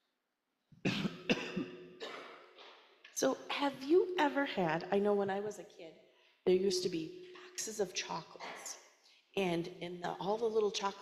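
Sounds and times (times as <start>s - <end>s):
woman coughing: 0.9s - 2.6s.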